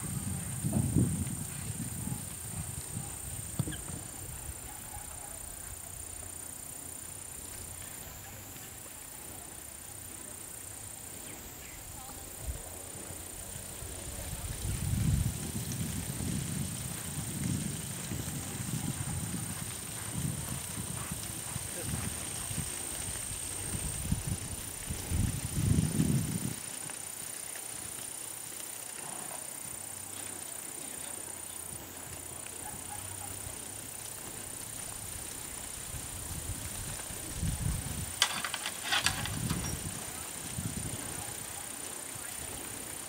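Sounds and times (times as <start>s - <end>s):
horse hooves thudding on sand: 14.6s - 27.0s.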